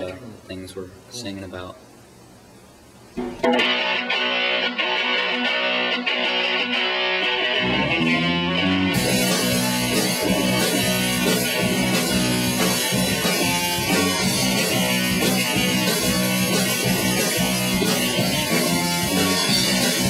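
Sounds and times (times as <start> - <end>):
rock band playing live: 3.2 - 20.0.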